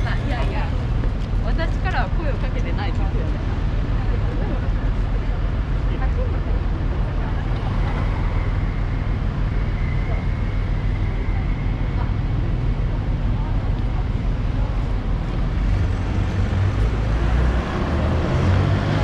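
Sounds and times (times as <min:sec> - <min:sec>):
people's voices: 0:00.0 - 0:19.0
road traffic rumble: 0:00.0 - 0:19.0.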